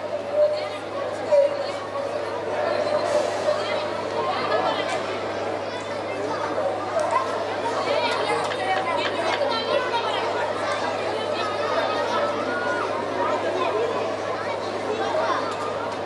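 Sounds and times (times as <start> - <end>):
people chattering: 0.0 - 16.0.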